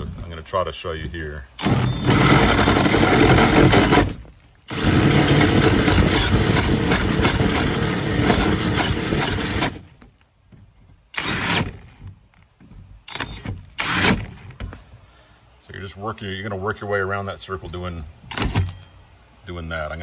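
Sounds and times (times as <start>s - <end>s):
drill hole saw cutting wood: 1.6s - 9.9s, 11.2s - 11.8s, 13.1s - 14.3s.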